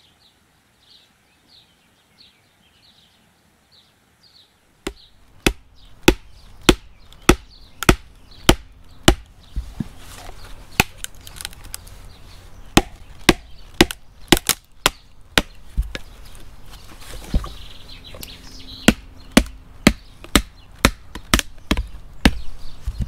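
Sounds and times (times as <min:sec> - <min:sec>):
hammer striking wedge in log: 0:04.9 - 0:09.3, 0:12.8 - 0:16.0.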